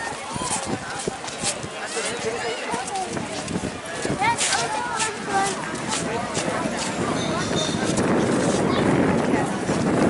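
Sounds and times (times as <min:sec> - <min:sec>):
footsteps on paving: 0:00.0 - 0:10.0
people talking: 0:00.0 - 0:10.0.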